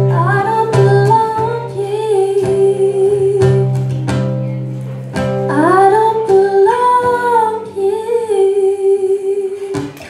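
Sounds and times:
acoustic guitar: 0:00.0 - 0:10.0
woman singing long held notes: 0:00.1 - 0:03.7, 0:05.5 - 0:09.9.

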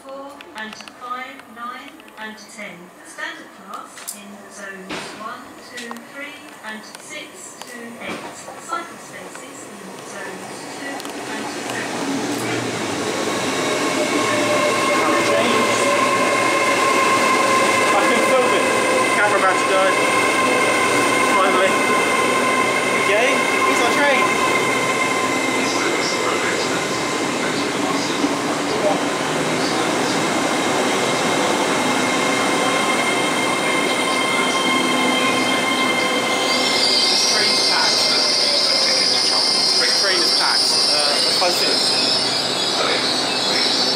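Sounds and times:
train running with whining tones: 0:02.4 - 0:43.9
train brake squeal: 0:13.6 - 0:18.6, 0:31.9 - 0:43.9.

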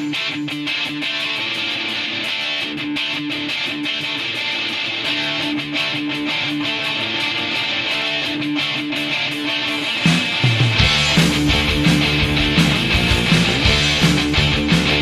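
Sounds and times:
punk band electric guitar riff: 0:00.0 - 0:15.0.

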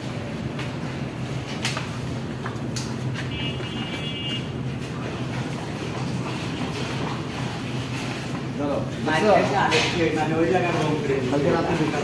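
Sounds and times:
electric ceiling fans humming: 0:00.0 - 0:12.0.

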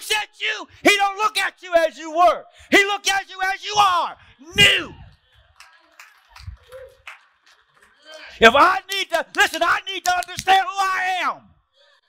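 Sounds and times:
faint handclaps: 0:05.1 - 0:10.6.

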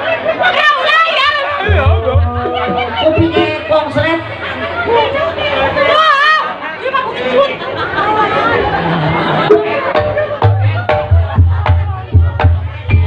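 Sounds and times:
people talking and calling out: 0:00.0 - 0:13.0.

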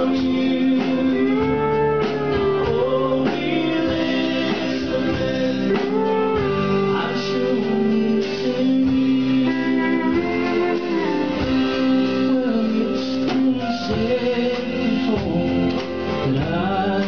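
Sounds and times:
country band playing: 0:00.0 - 0:17.0
electric guitar: 0:00.0 - 0:17.0.

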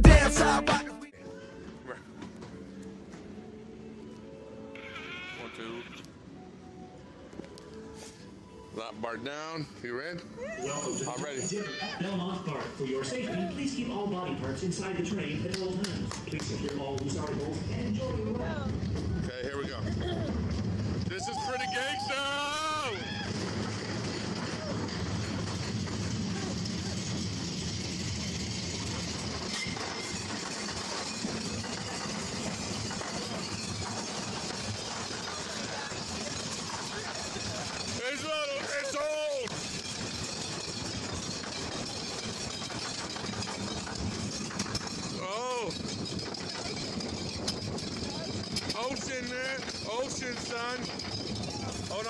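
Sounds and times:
wooden roller coaster rumbling: 0:12.0 - 0:52.0
riders whooping: 0:21.1 - 0:23.8.

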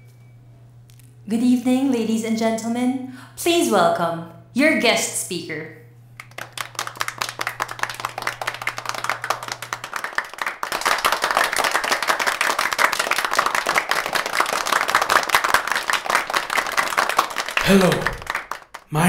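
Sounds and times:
audience clapping: 0:06.2 - 0:19.0.

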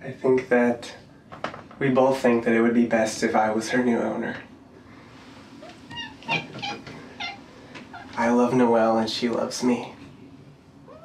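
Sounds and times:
cat meowing: 0:05.6 - 0:08.2.

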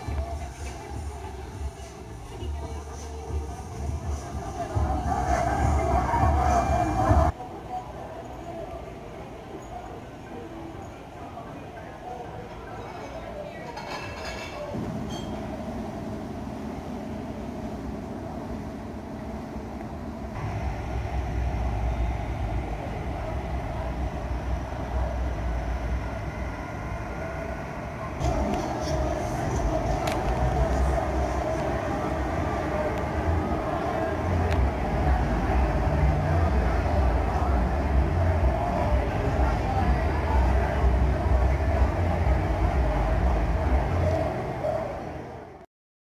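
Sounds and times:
city street rumble: 0:00.0 - 0:45.6.

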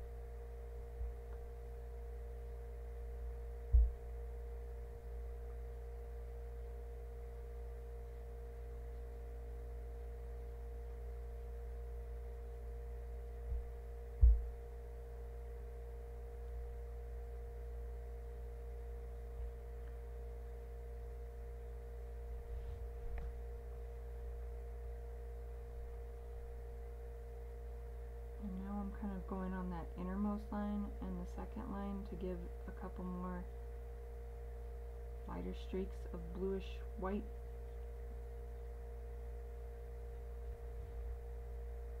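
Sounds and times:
electrical hum: 0:00.0 - 0:42.0
soft low thuds: 0:03.6 - 0:05.4, 0:13.4 - 0:14.8.

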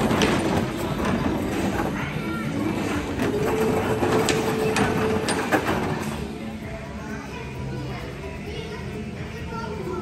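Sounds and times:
bumper car motor hum: 0:00.0 - 0:07.0
bumper cars clacking: 0:00.0 - 0:07.0.

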